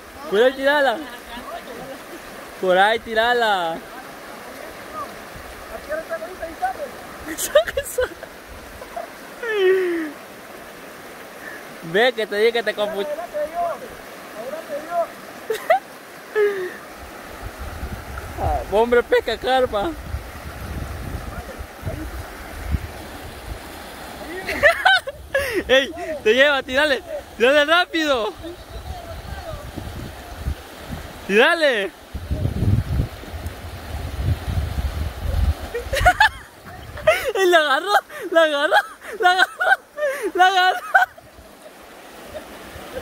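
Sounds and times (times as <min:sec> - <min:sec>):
river rapids rushing over rocks: 0:00.0 - 0:32.4, 0:33.1 - 0:43.0
voices: 0:24.2 - 0:30.6.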